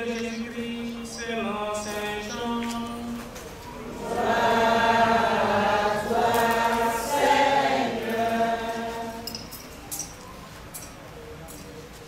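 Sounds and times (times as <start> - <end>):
voices singing liturgical chant: 0.0 - 9.8.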